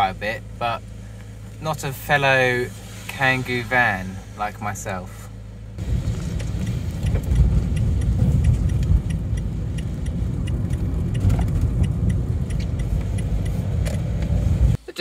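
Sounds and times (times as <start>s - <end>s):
engine and tyres rumbling: 0.0s - 14.8s.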